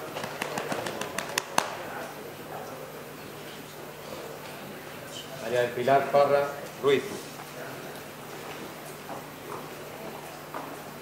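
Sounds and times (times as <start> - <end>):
steady room hum: 0.0 - 11.0.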